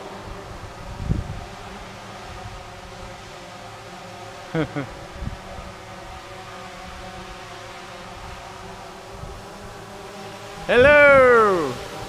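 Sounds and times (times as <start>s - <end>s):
drone propellers whirring: 0.0s - 12.0s.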